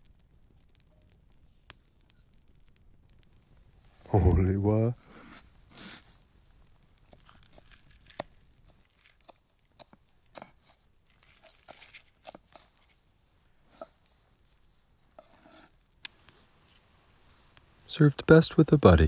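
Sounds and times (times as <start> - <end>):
knife cutting crispy crust: 15.2 - 15.8.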